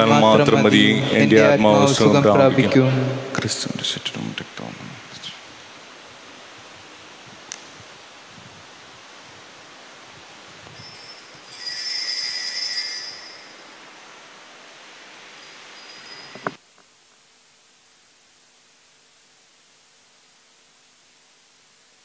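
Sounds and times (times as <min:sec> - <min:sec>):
faint room hiss: 0:00.0 - 0:22.0
high ringing chime: 0:10.6 - 0:14.0, 0:15.3 - 0:16.6.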